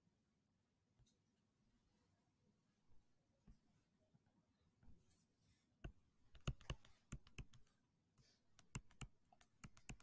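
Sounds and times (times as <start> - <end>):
pen tapping on touchscreen: 5.8 - 7.6, 8.6 - 10.0.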